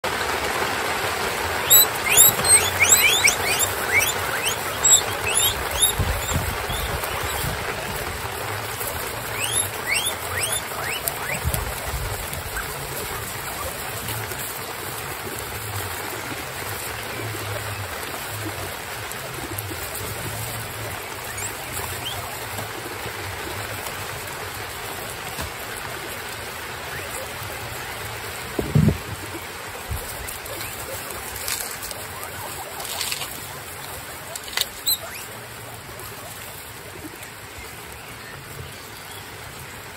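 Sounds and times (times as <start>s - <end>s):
guinea pigs munching lettuce: 0.0s - 39.9s
guinea pigs rustling in straw: 1.0s - 39.8s
high falling squeaks: 1.6s - 7.6s, 9.3s - 11.5s.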